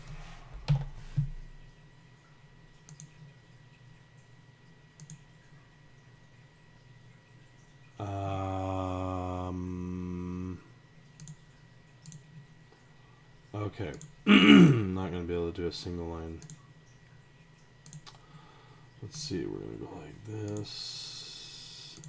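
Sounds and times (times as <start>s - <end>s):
low steady hum: 0.0s - 22.0s
computer mouse clicking: 2.8s - 3.3s, 5.0s - 5.2s, 11.2s - 11.4s, 12.0s - 12.4s, 16.4s - 16.6s, 17.8s - 18.2s.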